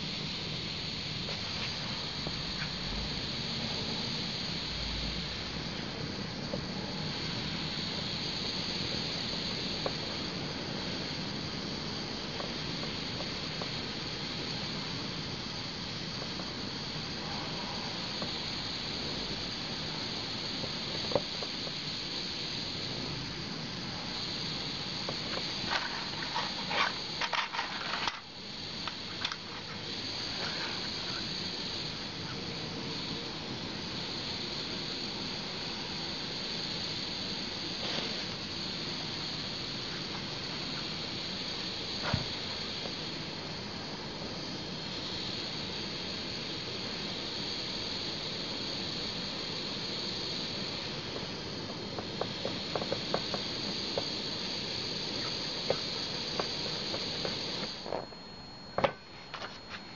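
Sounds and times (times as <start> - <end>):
gas burner hissing: 0.0 - 59.9.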